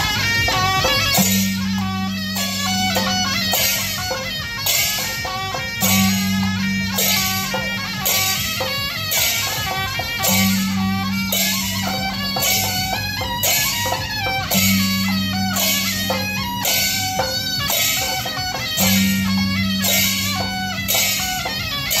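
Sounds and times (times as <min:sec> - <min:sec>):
cymbal crashes: 0:00.0 - 0:22.0
reed horn folk melody: 0:00.0 - 0:22.0.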